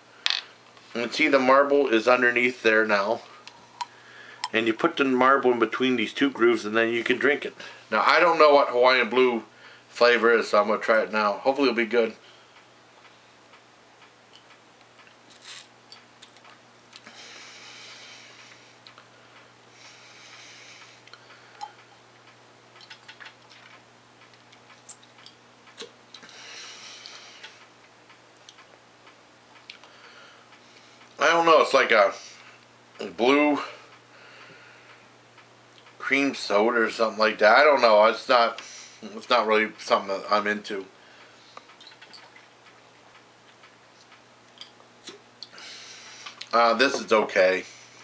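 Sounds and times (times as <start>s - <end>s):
soft breath: 17.0s - 21.7s
mouth clicks and lip smacks: 22.8s - 26.3s, 41.6s - 42.5s, 43.5s - 45.6s.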